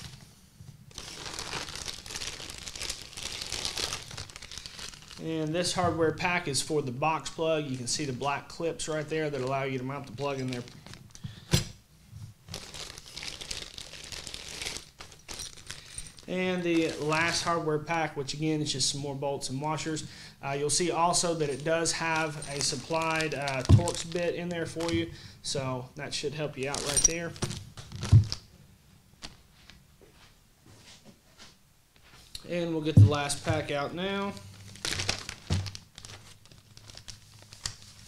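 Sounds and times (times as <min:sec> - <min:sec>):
plastic bags crinkling: 0:00.9 - 0:05.8, 0:08.8 - 0:11.4, 0:12.4 - 0:17.6, 0:20.6 - 0:25.1, 0:26.6 - 0:28.5, 0:33.0 - 0:38.0
plastic bag thump on table: 0:35.4 - 0:35.8.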